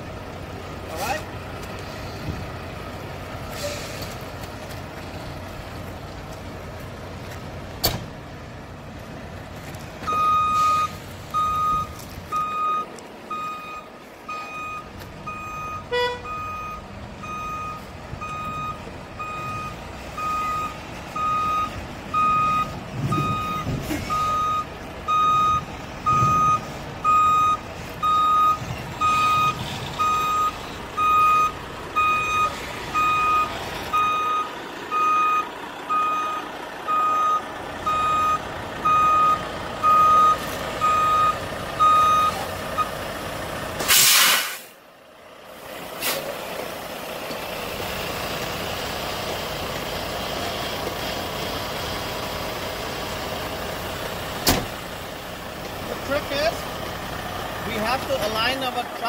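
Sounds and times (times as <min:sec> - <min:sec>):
diesel engine running: 0:00.0 - 0:59.0
air brakes hissing: 0:03.5 - 0:04.2, 0:43.8 - 0:44.8, 0:45.9 - 0:46.4
truck reversing alarm beeping: 0:10.0 - 0:44.5.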